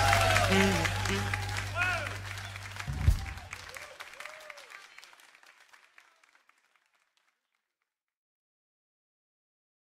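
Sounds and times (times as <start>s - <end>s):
audience applauding: 0.0s - 7.7s
low thump: 2.9s - 3.5s.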